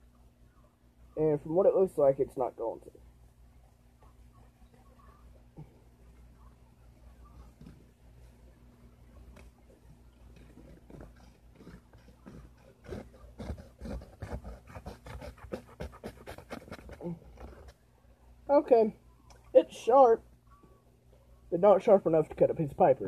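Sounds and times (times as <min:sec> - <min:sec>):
knife sawing at paper: 0:10.7 - 0:17.7.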